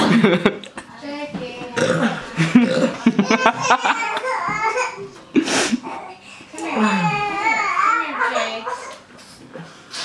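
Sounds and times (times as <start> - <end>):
person belching: 1.8 - 3.1.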